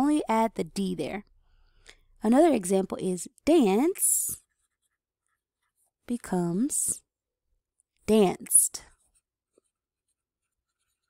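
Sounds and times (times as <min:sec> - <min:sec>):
pen scratching on paper: 0:04.4 - 0:05.7, 0:09.1 - 0:11.0.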